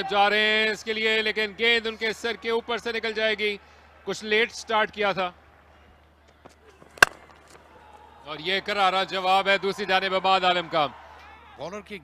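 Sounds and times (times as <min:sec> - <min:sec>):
cricket bat striking ball: 0:06.8 - 0:07.7.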